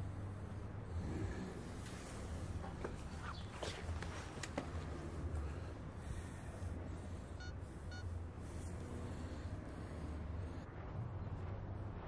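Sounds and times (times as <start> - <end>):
short electronic beeps: 7.4 - 8.1.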